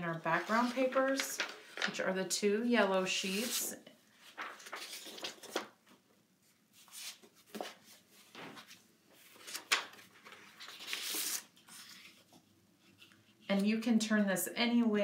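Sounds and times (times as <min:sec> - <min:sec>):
paper sheets swishing: 0:00.1 - 0:02.0, 0:03.2 - 0:05.7.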